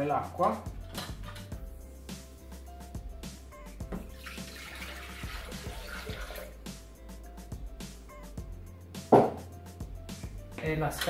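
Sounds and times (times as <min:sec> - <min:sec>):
background music with beat: 0:00.0 - 0:11.0
water pouring into metal bowl: 0:04.1 - 0:06.5.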